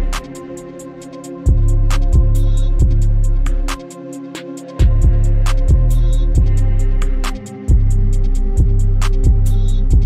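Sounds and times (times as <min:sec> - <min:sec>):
deep bass: 0:00.0 - 0:00.3, 0:01.5 - 0:03.8, 0:04.8 - 0:10.0
hi-hat ticks: 0:00.0 - 0:10.0
kick drum: 0:01.5 - 0:03.8, 0:04.8 - 0:10.0.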